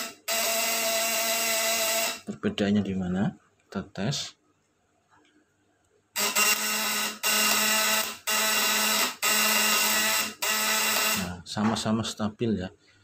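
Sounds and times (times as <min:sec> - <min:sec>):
high-voltage inverter buzzing: 0:00.0 - 0:02.3, 0:06.2 - 0:11.5.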